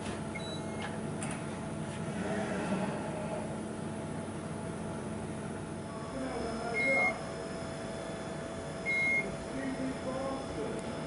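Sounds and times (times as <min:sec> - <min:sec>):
measuring machine mechanical hum: 0:00.0 - 0:11.0
short electronic beep: 0:06.7 - 0:07.2, 0:08.9 - 0:09.3.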